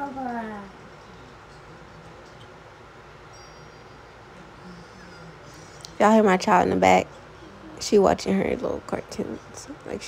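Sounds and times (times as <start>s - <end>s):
soft high chiming tones: 3.2s - 5.9s.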